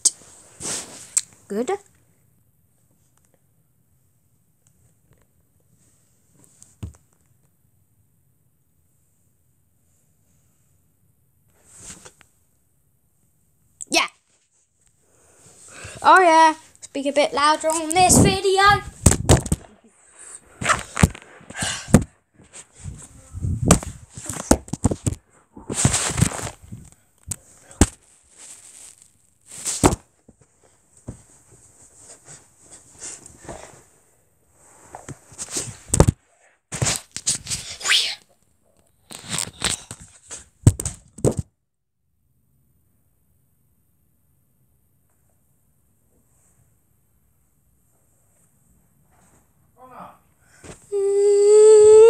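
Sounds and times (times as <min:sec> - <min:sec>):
phone handling rubbing and bumps: 0:21.9 - 0:26.8.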